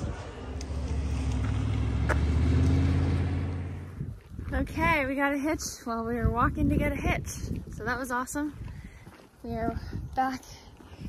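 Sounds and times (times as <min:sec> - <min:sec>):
car engine and road hum: 0:00.0 - 0:05.0.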